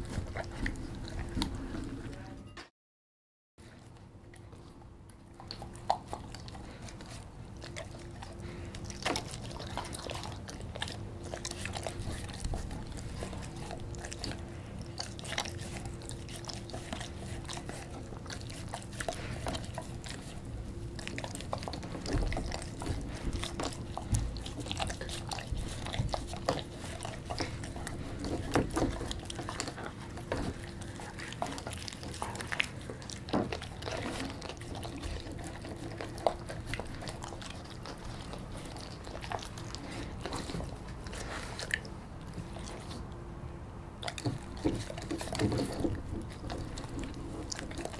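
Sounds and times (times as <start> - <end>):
dog chewing crunchy food: 0.0 - 2.3, 3.6 - 47.9
faint steady hum: 3.6 - 47.9.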